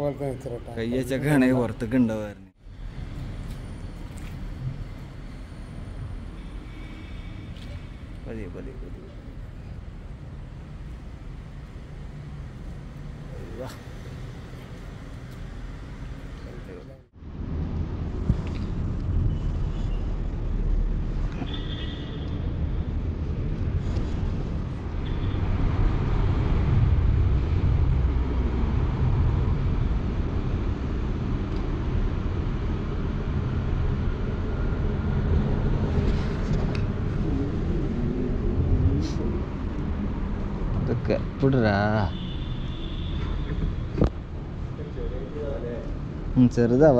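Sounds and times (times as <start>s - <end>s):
low rumble of road traffic: 0.0s - 46.9s.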